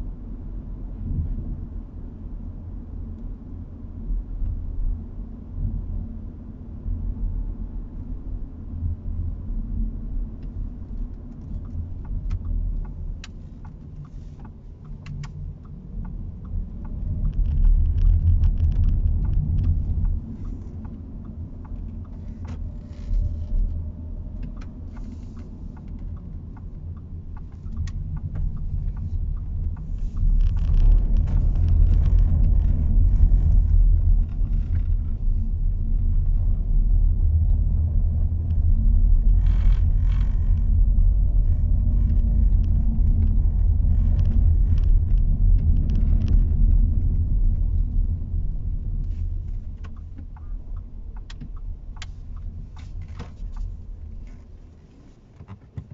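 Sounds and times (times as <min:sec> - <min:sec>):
car road and engine rumble: 0:00.0 - 0:55.9.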